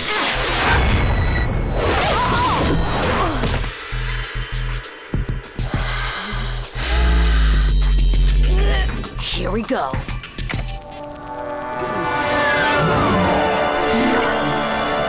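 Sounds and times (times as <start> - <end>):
dramatic music: 0.0 - 15.0.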